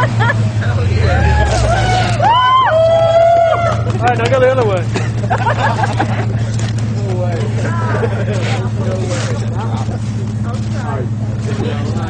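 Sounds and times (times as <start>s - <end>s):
people chattering: 0.0s - 12.0s
truck engine idling: 0.0s - 12.0s.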